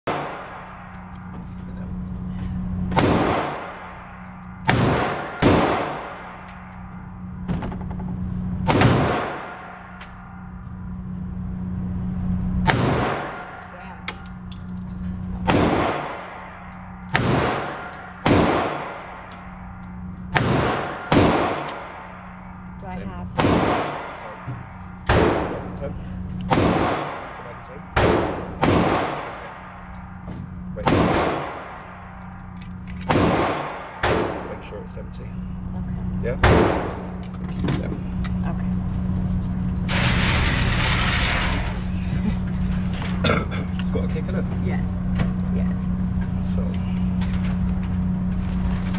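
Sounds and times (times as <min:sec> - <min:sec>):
steady low hum: 0:00.0 - 0:48.9
pistol shots with ringing echo: 0:00.1 - 0:01.2, 0:02.9 - 0:06.8, 0:08.6 - 0:10.4, 0:12.6 - 0:13.7, 0:15.4 - 0:19.7, 0:20.3 - 0:22.5, 0:23.3 - 0:25.8, 0:26.4 - 0:30.2, 0:30.8 - 0:34.7, 0:36.4 - 0:37.2.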